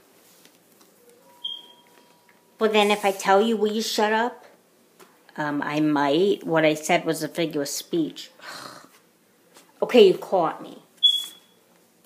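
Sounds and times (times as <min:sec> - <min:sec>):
high-pitched squeak: 0:01.2 - 0:02.3, 0:11.0 - 0:11.6.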